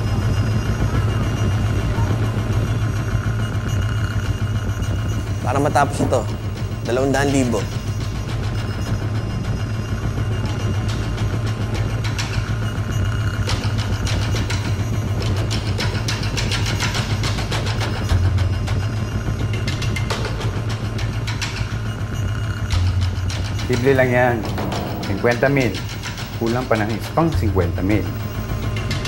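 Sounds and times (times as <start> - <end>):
faint music: 0.0 - 29.0
street noise: 0.0 - 29.0
low engine rumble: 21.9 - 29.0.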